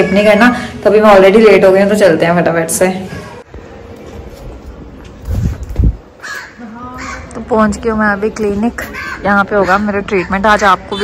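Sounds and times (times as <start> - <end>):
low wind rumble on microphone: 5.0 - 6.2
crow cawing: 6.2 - 7.4, 8.8 - 11.0.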